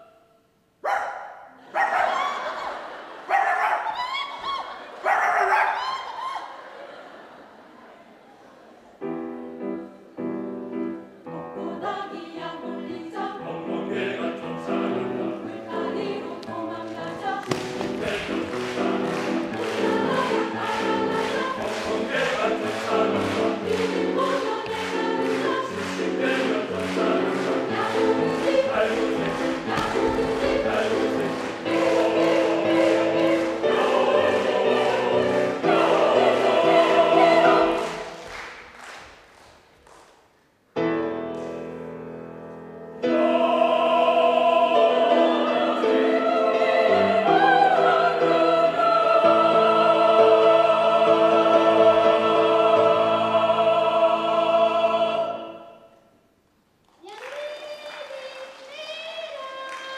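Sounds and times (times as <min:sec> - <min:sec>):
voices imitating dog barking: 0:00.8 - 0:02.4, 0:03.3 - 0:04.0, 0:05.0 - 0:05.9
piano accompaniment: 0:09.0 - 0:38.3, 0:40.8 - 0:55.0
mixed choir singing: 0:11.0 - 0:38.4, 0:43.0 - 0:56.1.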